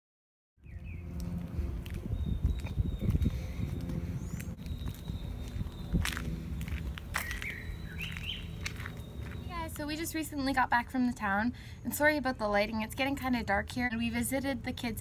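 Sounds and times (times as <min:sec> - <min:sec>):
footsteps on paved path: 0:00.6 - 0:11.3
bird chirps: 0:04.2 - 0:09.8.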